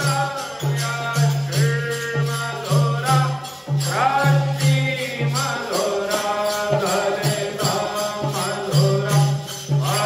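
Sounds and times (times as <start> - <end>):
instrumental accompaniment: 0.0 - 10.0
person singing a hymn: 0.0 - 10.0.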